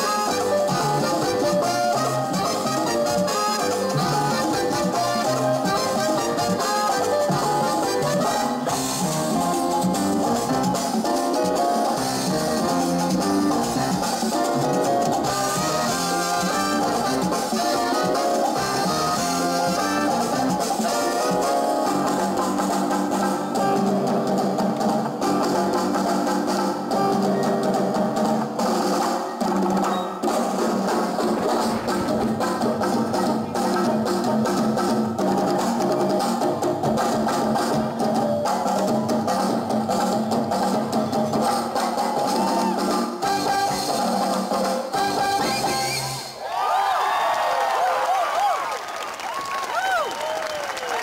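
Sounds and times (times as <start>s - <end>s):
salsa band playing: 0.0s - 46.4s.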